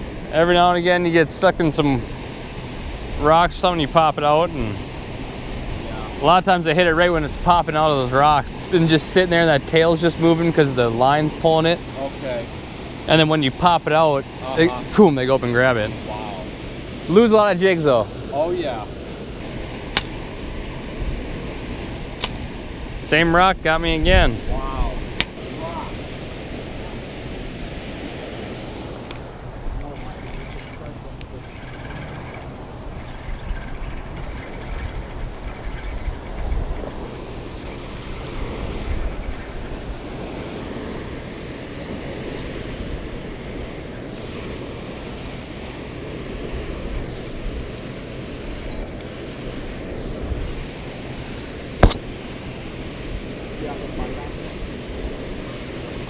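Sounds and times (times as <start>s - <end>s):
water rushing: 0.0s - 56.0s
wind on microphone: 18.3s - 56.0s
sharp click: 19.9s - 20.2s.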